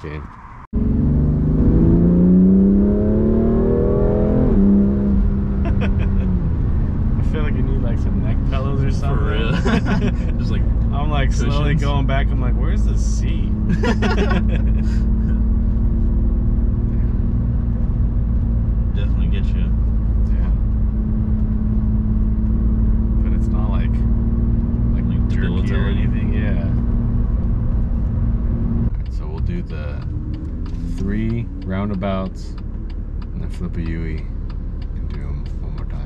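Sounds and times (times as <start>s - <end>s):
car engine drone: 0.0s - 36.0s
road rumble: 0.0s - 36.0s.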